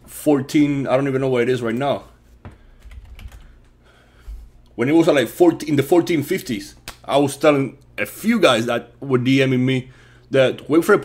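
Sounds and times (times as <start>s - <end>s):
keyboard keys clicking: 2.8s - 3.5s.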